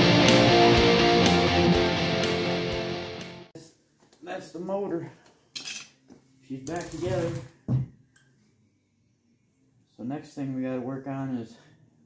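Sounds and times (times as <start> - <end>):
metal tools clinking: 5.6 - 6.0, 6.7 - 7.5.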